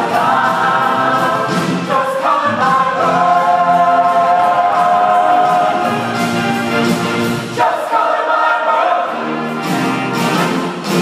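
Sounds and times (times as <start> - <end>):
choir singing in parts: 0.0 - 10.6.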